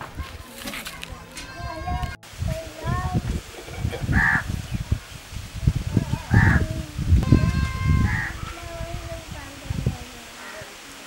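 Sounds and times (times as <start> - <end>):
low rumbling: 1.1 - 10.3
crow cawing: 4.1 - 4.5, 6.3 - 6.6, 7.4 - 8.7, 10.4 - 10.7.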